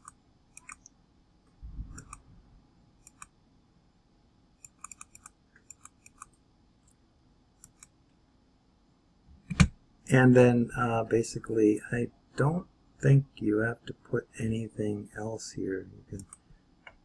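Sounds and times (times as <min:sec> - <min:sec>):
computer mouse clicks: 0:00.0 - 0:01.0, 0:01.9 - 0:02.2, 0:03.0 - 0:03.4, 0:04.6 - 0:07.0, 0:07.6 - 0:08.0, 0:16.2 - 0:17.0.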